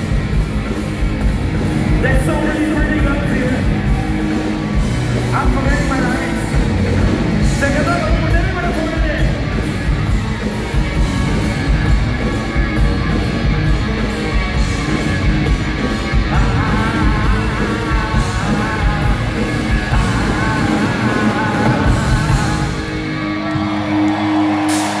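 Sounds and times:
drums and cymbals: 0:00.0 - 0:22.9, 0:23.7 - 0:25.0
electric guitars: 0:00.0 - 0:25.0.

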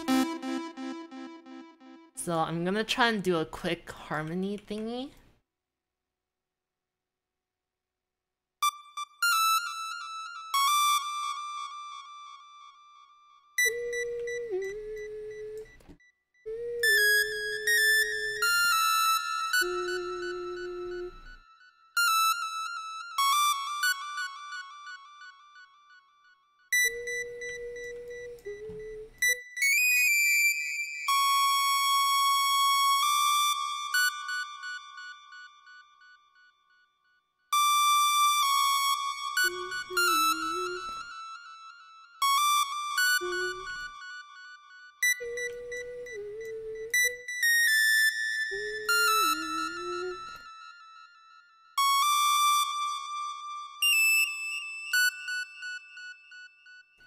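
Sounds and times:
wavering low synth line: 0:39.4 - 0:41.0.

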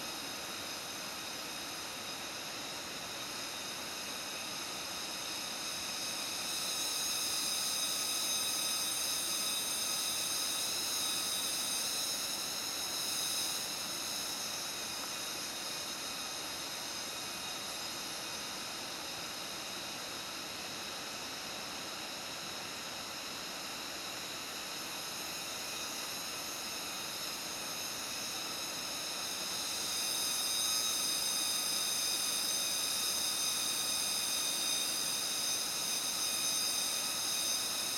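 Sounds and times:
high-pitched forest drone: 0:00.0 - 0:37.9.

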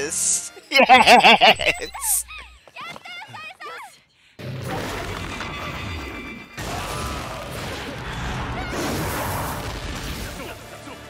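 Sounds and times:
action film score: 0:00.0 - 0:11.0.

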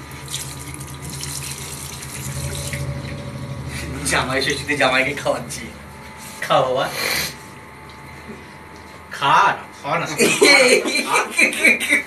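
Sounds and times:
low hum: 0:00.0 - 0:09.8.

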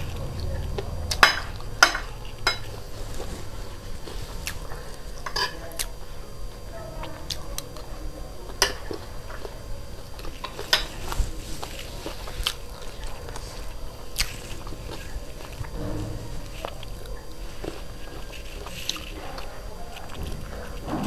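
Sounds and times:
crunchy chewing: 0:00.0 - 0:21.0.

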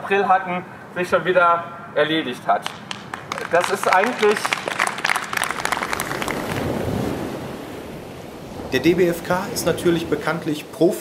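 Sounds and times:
crowd clapping: 0:02.6 - 0:07.1
wind noise on microphone: 0:04.1 - 0:10.8.

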